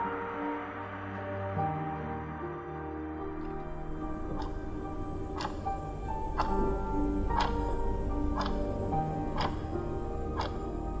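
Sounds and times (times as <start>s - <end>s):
background music with held tones: 0.0s - 11.0s
clock ticking: 3.4s - 11.0s.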